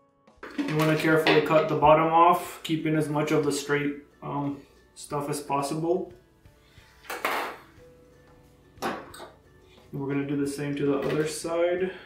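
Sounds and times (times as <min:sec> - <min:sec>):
faint background music: 0:00.3 - 0:12.0
plastic bottle clattering: 0:00.4 - 0:01.8, 0:10.9 - 0:11.5.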